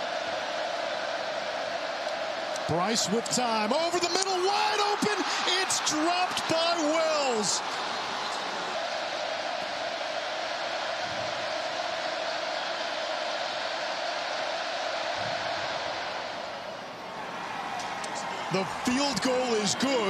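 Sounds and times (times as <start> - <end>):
stadium crowd noise: 0.0 - 20.0.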